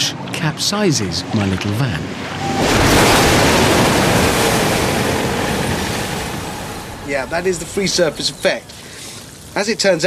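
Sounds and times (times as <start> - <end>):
loud rushing noise: 2.3 - 7.9.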